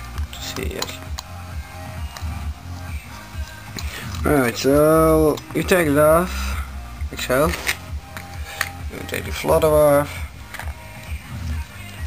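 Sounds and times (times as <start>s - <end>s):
music with pulsing bass: 0.0s - 12.0s.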